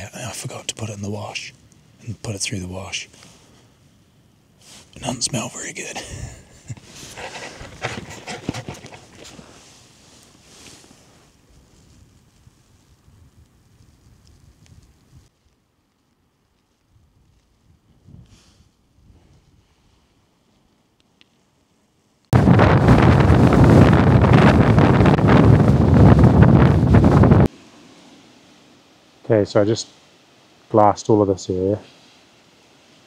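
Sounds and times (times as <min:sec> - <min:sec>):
man laughing: 0:05.9 - 0:06.9.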